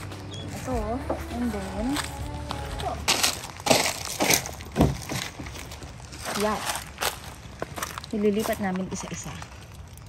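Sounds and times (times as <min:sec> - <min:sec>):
footsteps crunching on dry leaves: 0:00.0 - 0:10.0.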